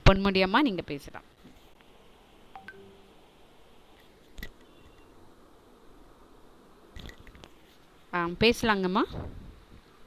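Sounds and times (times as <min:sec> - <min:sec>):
faint electronic beeps: 0:02.6 - 0:03.2.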